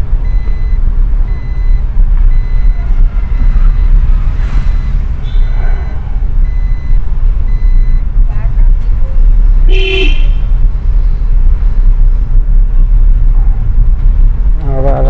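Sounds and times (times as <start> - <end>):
car engine and road rumble: 0.0 - 15.0
vehicle horn toot: 9.7 - 10.4.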